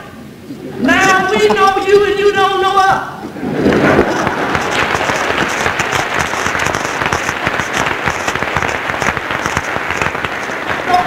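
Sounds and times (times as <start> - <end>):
audience applauding: 3.5 - 11.0.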